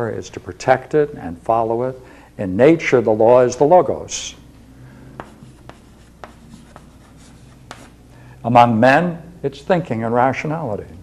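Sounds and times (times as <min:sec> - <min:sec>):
chalk writing on chalkboard: 0:05.1 - 0:08.0.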